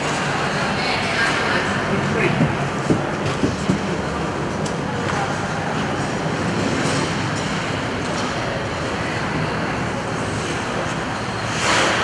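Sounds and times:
ice rink background noise: 0.0s - 12.0s
skate blade scraping ice: 11.5s - 12.0s.

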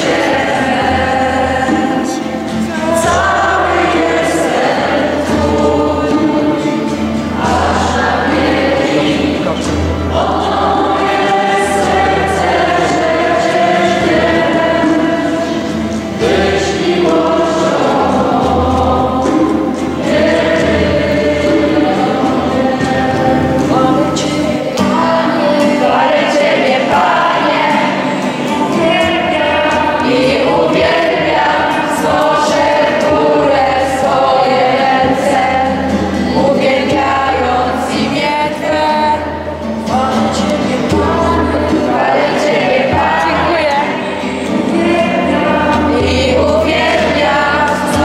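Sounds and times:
woman singing lead: 0.0s - 9.2s, 9.9s - 48.0s
acoustic guitar strumming: 0.0s - 48.0s
congregation and choir singing hymn: 0.0s - 48.0s.

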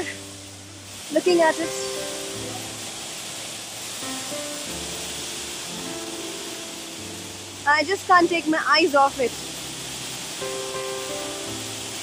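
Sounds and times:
soft background music: 0.0s - 12.0s
waterfall rushing: 0.0s - 12.0s.

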